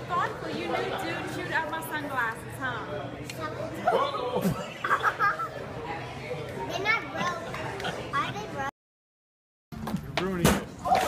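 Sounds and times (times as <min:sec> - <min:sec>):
murmur of background chatter: 0:00.0 - 0:08.7.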